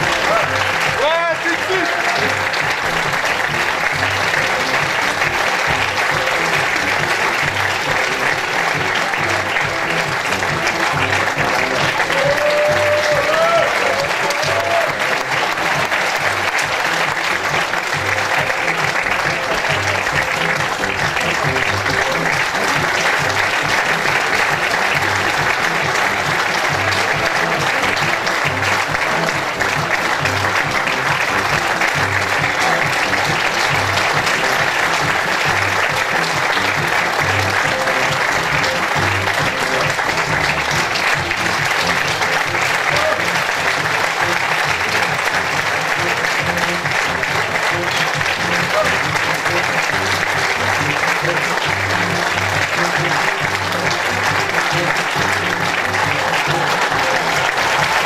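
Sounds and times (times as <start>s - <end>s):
audience applauding: 0.0s - 58.0s
music with a steady beat: 2.2s - 58.0s.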